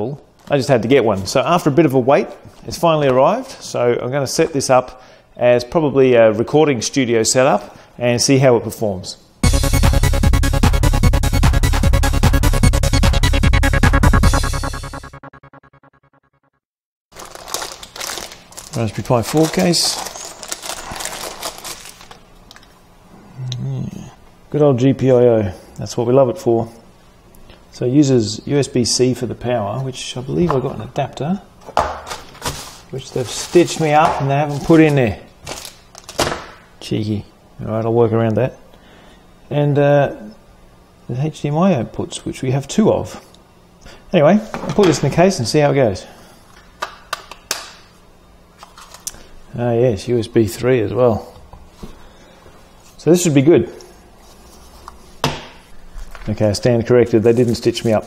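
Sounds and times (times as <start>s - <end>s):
plastic bag crinkling: 17.1s - 22.7s, 32.1s - 36.2s.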